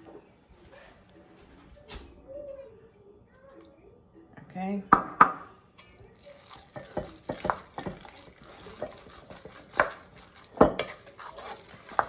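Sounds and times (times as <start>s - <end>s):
spoon clinking against metal bowl: 5.8s - 12.0s
spoon scraping through salad: 6.2s - 12.0s.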